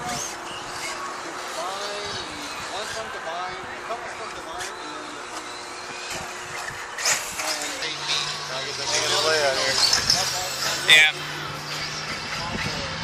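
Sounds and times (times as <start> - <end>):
radio-controlled buggies driving: 0.0 - 13.0
people talking: 1.4 - 5.5, 7.4 - 13.0.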